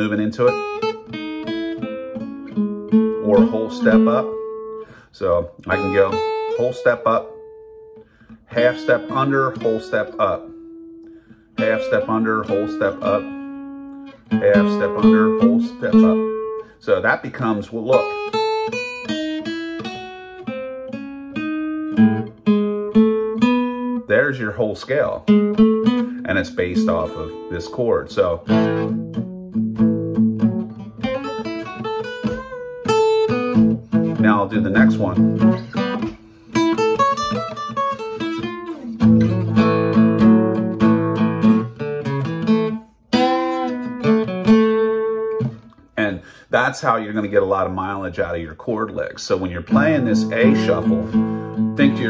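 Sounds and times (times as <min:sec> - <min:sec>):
acoustic guitar single-note line: 0:00.0 - 0:46.4, 0:49.0 - 0:52.0.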